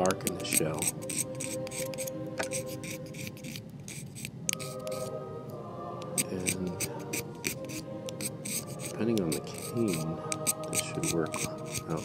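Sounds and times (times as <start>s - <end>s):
reed knife scraping cane: 6.2s - 12.0s.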